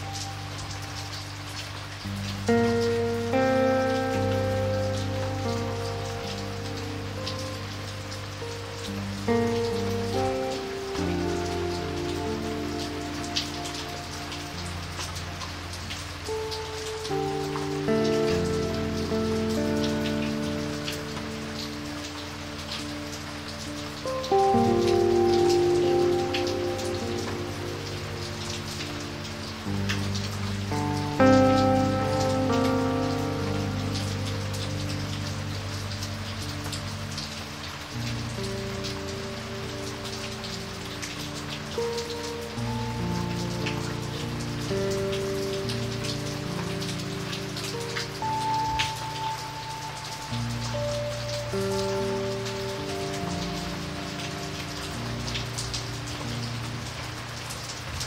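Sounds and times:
rain on wet pavement: 0.0 - 58.0
slow music of held chords: 0.0 - 58.0.

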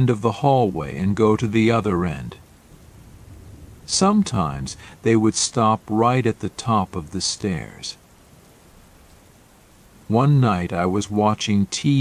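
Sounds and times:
faint steady rainfall: 0.0 - 12.0.

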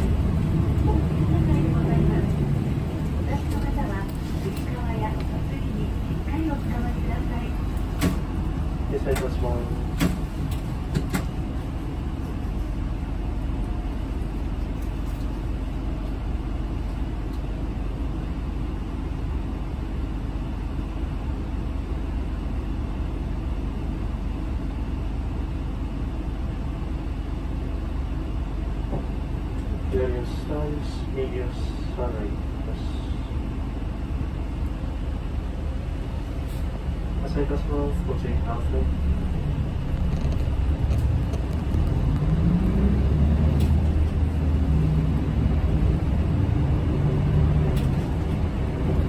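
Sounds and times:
bus engine and road rumble: 0.0 - 49.0.

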